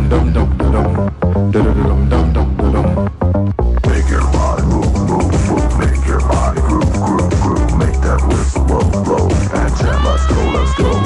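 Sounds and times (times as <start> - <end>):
electronic dance music: 0.2 - 11.0.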